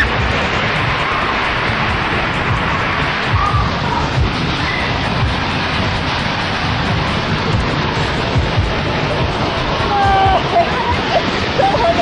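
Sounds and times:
low buffeting thumps: 0.0s - 12.0s
wind rushing over microphone: 0.0s - 12.0s.

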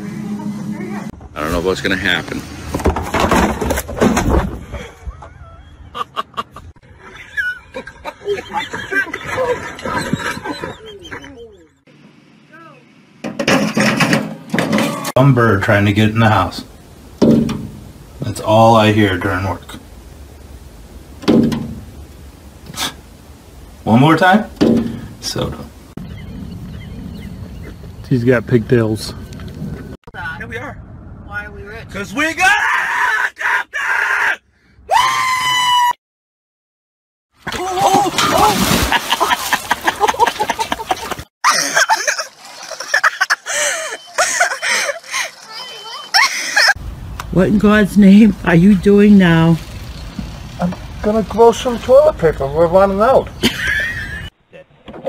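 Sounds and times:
wringer knocking and clattering: 13.2s - 15.0s, 17.2s - 17.8s
water splashing: 14.5s - 26.2s, 37.4s - 46.7s
person screaming: 32.4s - 36.0s, 37.5s - 38.7s
voices shouting: 43.5s - 46.8s.

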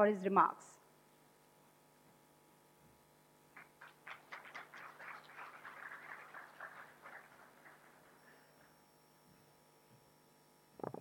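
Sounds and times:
faint audience applause: 3.5s - 8.7s.

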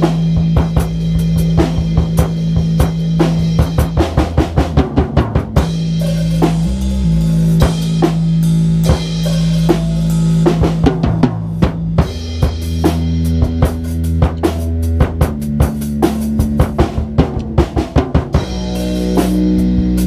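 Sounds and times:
held low keyboard notes: 0.0s - 20.0s
jazz drum kit: 0.0s - 20.0s.

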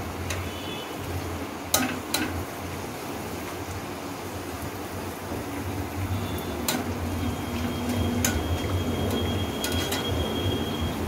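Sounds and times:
food sizzling in hot oil: 0.0s - 11.0s.

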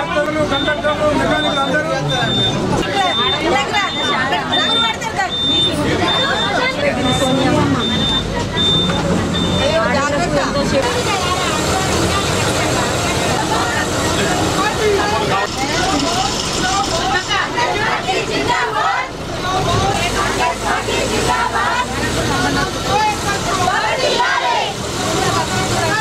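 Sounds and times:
bus engine running: 0.0s - 26.0s
passengers talking: 0.0s - 26.0s
short high beeps: 0.5s - 9.9s.

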